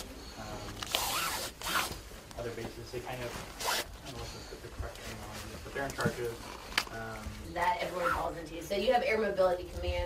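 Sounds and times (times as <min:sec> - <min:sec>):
zipper being zipped: 0:00.8 - 0:02.0, 0:03.5 - 0:04.0.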